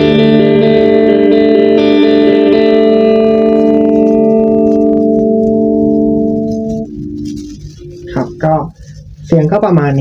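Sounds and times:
overdriven electric guitar chord ringing: 0:00.0 - 0:08.6.

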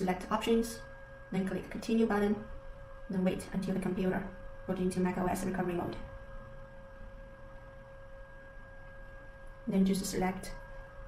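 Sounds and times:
faint electrical whine: 0:00.0 - 0:11.0
low background noise: 0:00.0 - 0:11.0.

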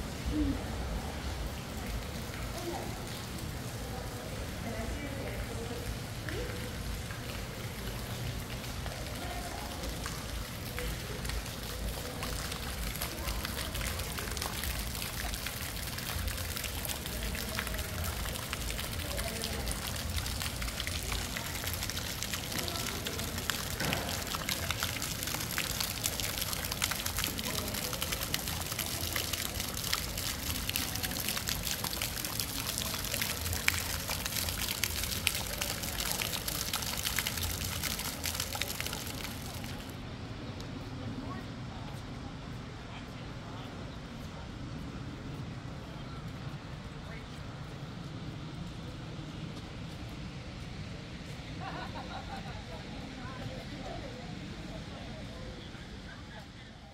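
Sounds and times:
water trickling and pattering: 0:00.0 - 0:40.0
murmur of voices: 0:00.0 - 0:56.9.

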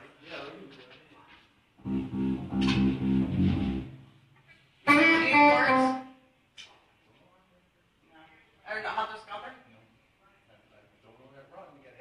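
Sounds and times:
guitar chords: 0:01.8 - 0:04.1, 0:04.9 - 0:06.1.

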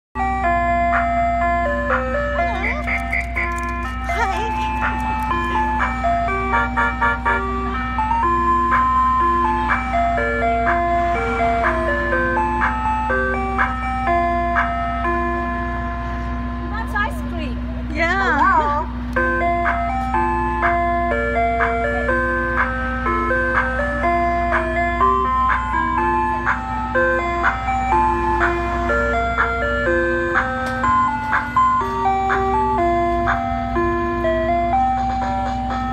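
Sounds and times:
ice cream truck chime tune: 0:00.2 - 0:35.9.

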